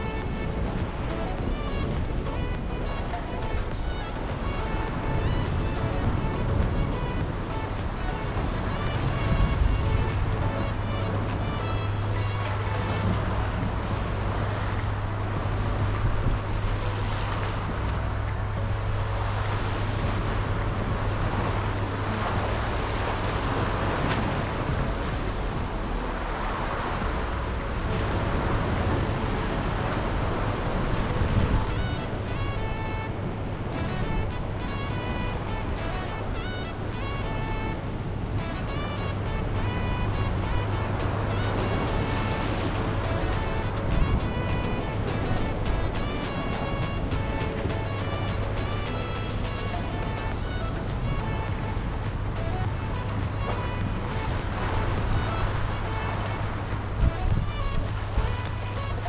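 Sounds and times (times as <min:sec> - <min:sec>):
sea washing against rocks: 0:00.0 - 0:18.4
background music repeated notes: 0:00.0 - 0:59.0
wind buffeting microphone: 0:00.0 - 0:59.0.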